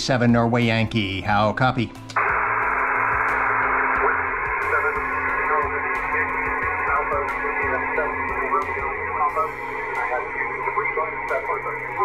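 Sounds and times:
radio receiver hiss and static: 0:02.2 - 0:12.0.

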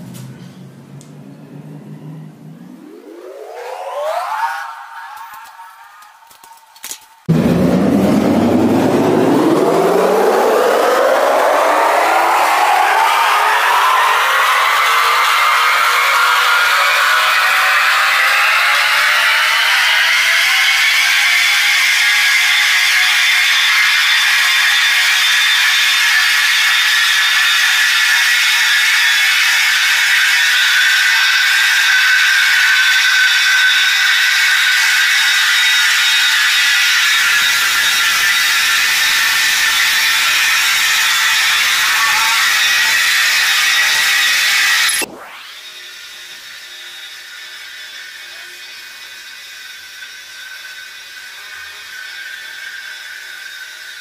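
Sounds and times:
floor grinding machine whine: 0:00.0 - 0:54.0.

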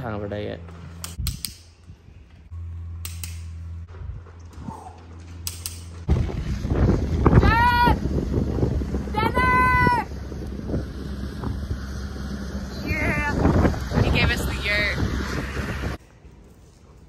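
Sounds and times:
wind buffeting microphone: 0:06.0 - 0:16.0.

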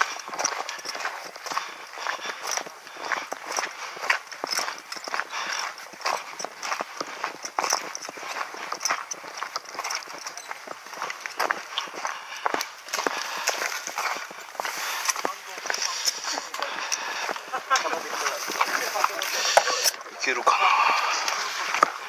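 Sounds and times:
footsteps on gravel and grass: 0:00.0 - 0:22.0.

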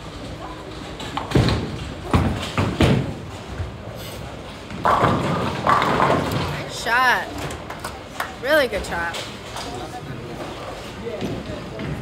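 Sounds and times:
people talking: 0:08.4 - 0:12.0.

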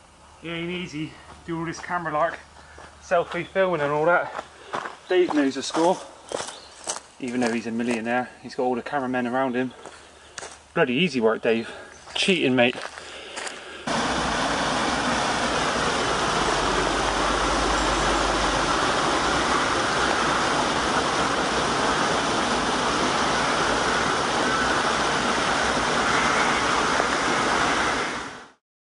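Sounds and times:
stream cascading over rocks: 0:13.4 - 0:28.6.

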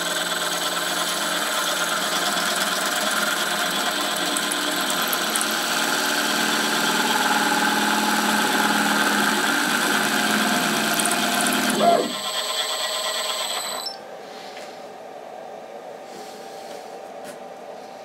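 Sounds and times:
router spindle hum and whine: 0:00.0 - 0:14.1.

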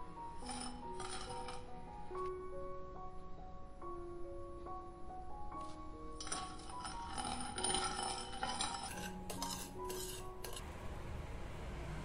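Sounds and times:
metal spoon scraping ceramic plate: 0:00.4 - 0:01.7, 0:06.2 - 0:10.6.

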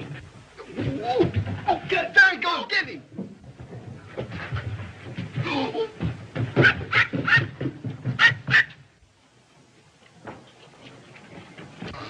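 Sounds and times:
small dog yapping: 0:06.6 - 0:07.5.

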